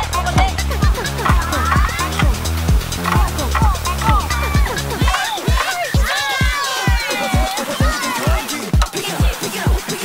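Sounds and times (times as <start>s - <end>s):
deep kick drum beat: 0.0s - 9.9s
electronic music: 0.0s - 10.0s.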